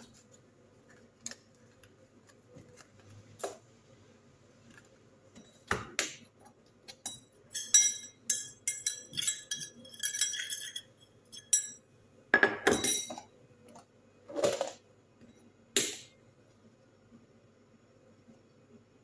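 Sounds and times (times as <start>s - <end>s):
metal teaspoon clinking on containers: 6.9s - 11.8s.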